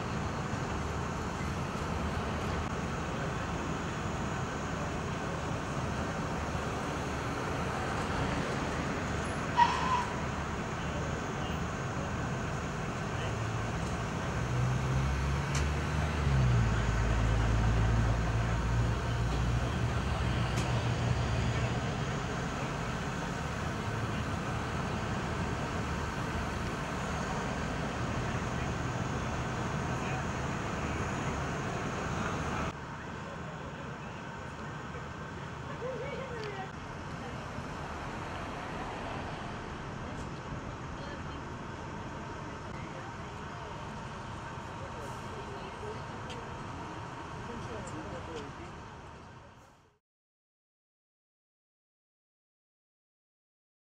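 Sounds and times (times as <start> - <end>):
diesel engine idling: 0.0 - 50.0
street traffic hum: 0.0 - 50.0.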